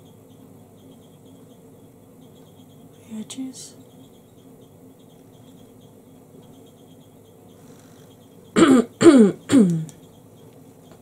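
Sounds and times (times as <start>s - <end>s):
woman clearing her throat: 8.6s - 9.9s.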